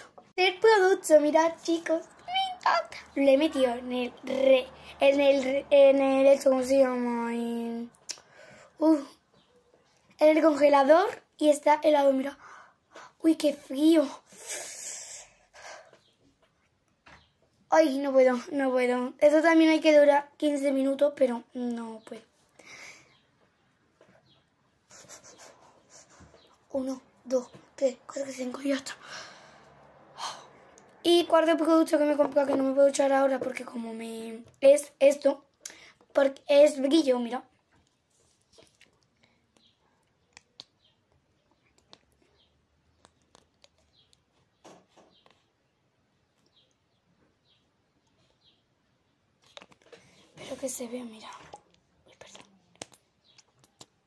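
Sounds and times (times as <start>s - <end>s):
girl's hissing breath: 14.2s - 16.0s.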